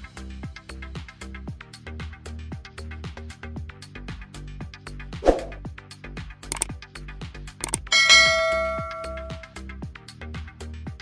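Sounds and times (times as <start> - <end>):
background music with steady beat: 0.0 - 11.0
short clicks: 6.5 - 6.7, 7.6 - 7.9
notification bell chime: 7.7 - 9.5.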